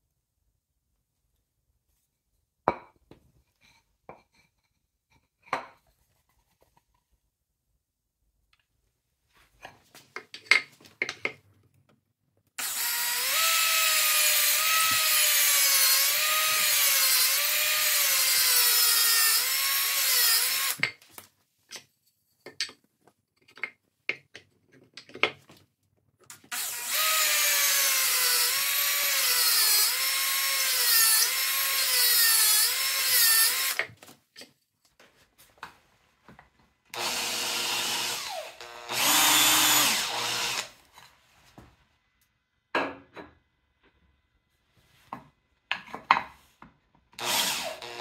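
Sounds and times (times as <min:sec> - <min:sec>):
cordless drill boring into wood: 0:12.6 - 0:20.8, 0:26.5 - 0:33.9, 0:36.9 - 0:40.8, 0:47.2 - 0:48.0.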